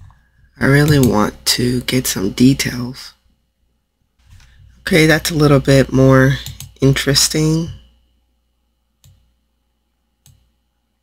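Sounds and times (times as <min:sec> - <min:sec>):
computer mouse clicks: 0:06.4 - 0:06.8, 0:09.0 - 0:09.3, 0:10.2 - 0:10.5.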